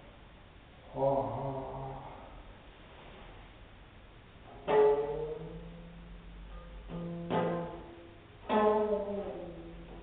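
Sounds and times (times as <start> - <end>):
man chanting a held syllable: 0.8 - 2.4.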